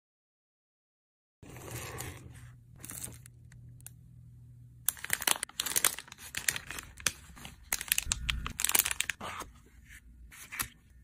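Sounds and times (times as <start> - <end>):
plastic packaging crinkling: 4.9 - 9.2.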